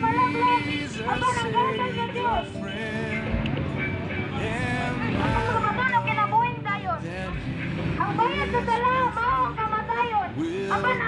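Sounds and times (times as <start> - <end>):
person talking loudly: 0.0 - 2.6, 4.4 - 7.4, 8.0 - 11.0
low street noise: 0.0 - 11.0.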